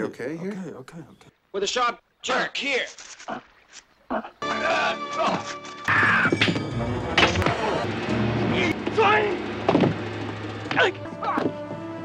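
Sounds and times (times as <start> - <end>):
man yelling: 4.4 - 6.4, 8.5 - 9.4, 10.7 - 11.5
low music score: 4.4 - 12.0.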